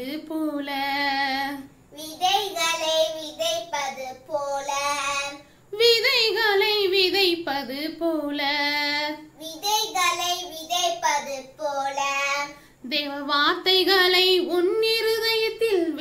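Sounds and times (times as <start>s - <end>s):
girl singing: 0.0s - 16.0s.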